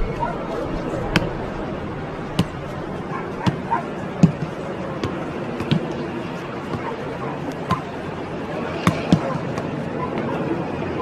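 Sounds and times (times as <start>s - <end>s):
steady background noise: 0.0s - 11.0s
football hitting a head: 3.4s - 6.9s, 7.5s - 7.9s, 8.8s - 9.7s.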